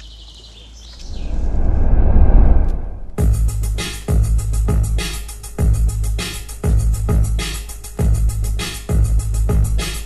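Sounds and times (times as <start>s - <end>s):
birds chirping: 0.0s - 1.6s
low rumbling whoosh: 1.0s - 3.6s.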